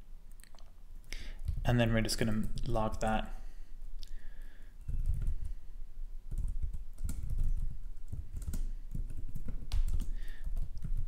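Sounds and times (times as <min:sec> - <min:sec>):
typing on computer keyboard: 0:04.9 - 0:05.6, 0:06.3 - 0:11.0.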